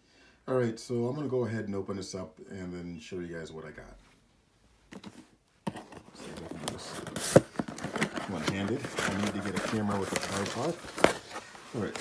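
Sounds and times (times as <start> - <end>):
cardboard box scraping and rustling: 5.7 - 12.0.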